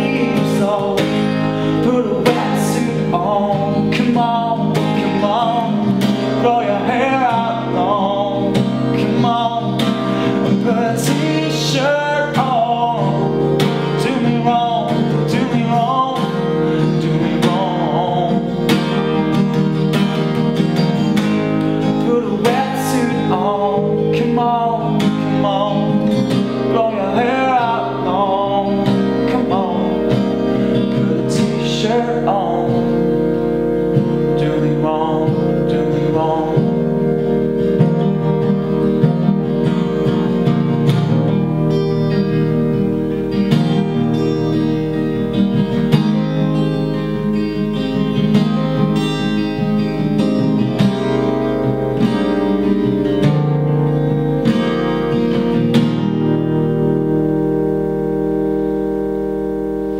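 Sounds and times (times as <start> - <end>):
man singing: 0.0 - 19.4, 21.0 - 37.1
strummed acoustic guitar: 0.0 - 59.9.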